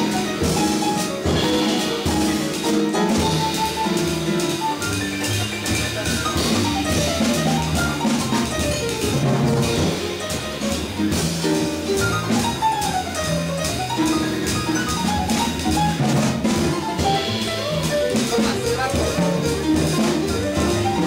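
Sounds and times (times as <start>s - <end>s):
double bass notes: 0.0s - 21.0s
piano running lines: 0.0s - 21.0s.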